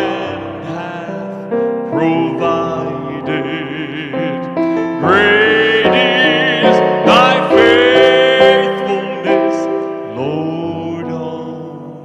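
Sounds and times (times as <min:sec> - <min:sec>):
electric keyboard chords: 0:00.0 - 0:12.0.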